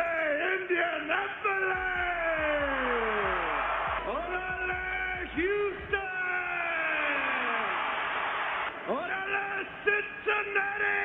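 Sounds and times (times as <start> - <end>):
arena crowd cheering: 0.0 - 11.0.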